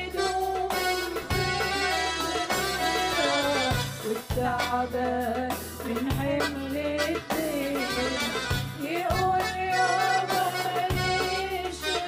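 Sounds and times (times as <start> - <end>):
drums: 0.0 - 12.0
held bass notes: 0.0 - 12.0
women singing worship song: 0.0 - 12.0.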